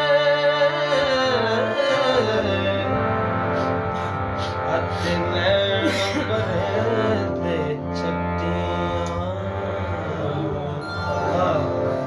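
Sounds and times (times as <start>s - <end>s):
harmonium playing chords: 0.0s - 12.0s.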